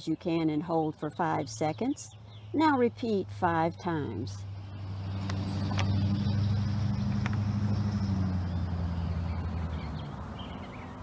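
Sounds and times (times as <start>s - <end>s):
vehicle engine passing by: 2.9s - 11.0s.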